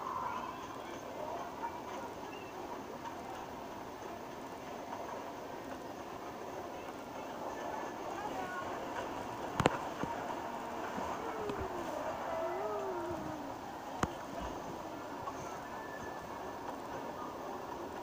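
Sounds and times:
ride train running: 0.0 - 18.0
faint wavering pitched sounds: 10.9 - 17.7.

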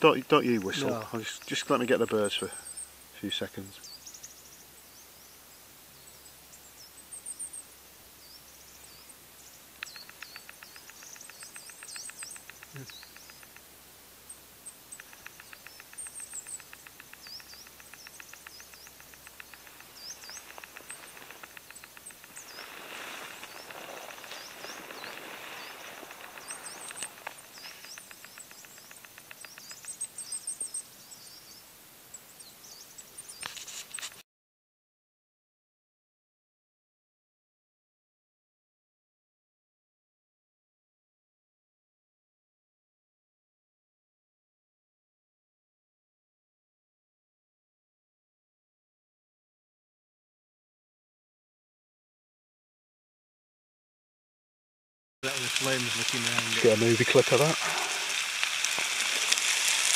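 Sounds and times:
rapid bird trill: 0.0 - 5.2, 8.3 - 34.2
songbirds chirping: 0.0 - 34.2, 55.2 - 59.9
soft rush of noise: 0.1 - 30.3, 55.2 - 59.9.

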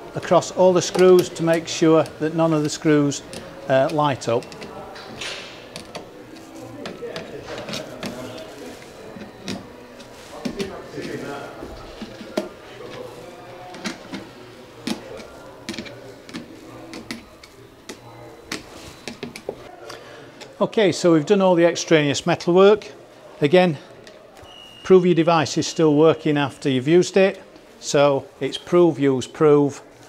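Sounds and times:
low background murmur: 0.0 - 30.0.

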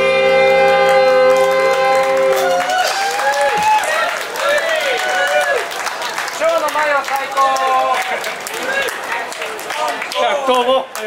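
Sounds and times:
big band holding a chord: 0.0 - 2.7.

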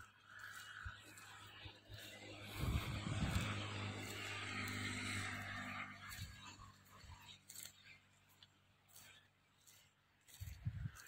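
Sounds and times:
motor humming: 1.3 - 7.6.

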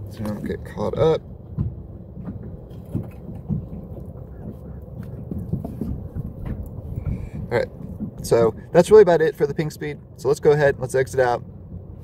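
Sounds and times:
wind on microphone: 1.6 - 8.8.

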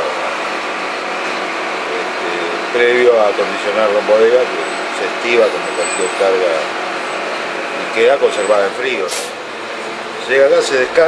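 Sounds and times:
boat machinery humming: 0.0 - 11.0.

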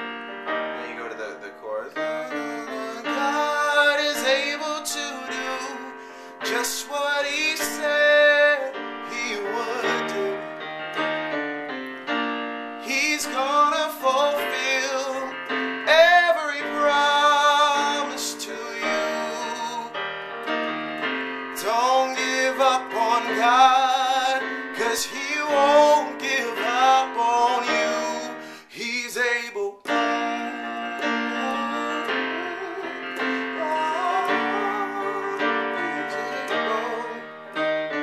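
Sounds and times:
digital piano gospel chords: 0.0 - 38.0
person singing: 0.8 - 10.6, 12.8 - 20.0, 21.6 - 38.0.

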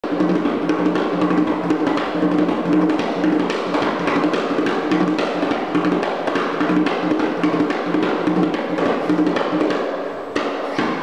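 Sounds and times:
hand drum played fast: 0.0 - 11.0.

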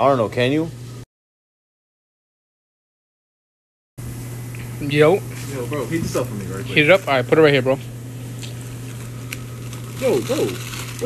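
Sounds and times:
steady low hum: 0.0 - 1.1, 4.0 - 11.0.

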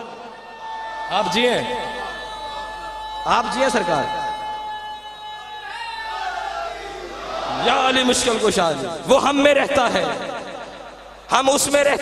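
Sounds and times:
amplified preacher's voice echoing: 0.0 - 5.2, 7.5 - 12.0
high ringing tone from loudspeakers: 1.1 - 5.9.

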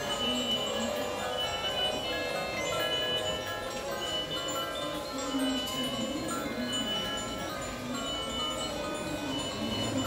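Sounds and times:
tinkling chime-like tunes: 0.0 - 10.0.

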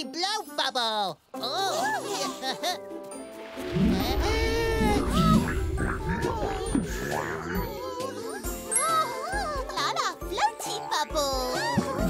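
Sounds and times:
bouncy cartoon music: 1.4 - 12.0.

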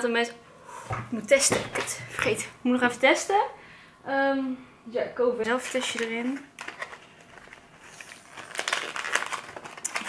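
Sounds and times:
plastic packaging crinkling: 5.6 - 10.0.

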